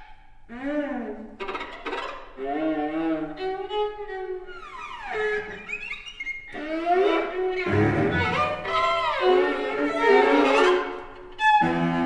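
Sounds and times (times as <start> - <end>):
high violin glides: 0.0 - 12.0
string quartet playing: 0.6 - 12.0.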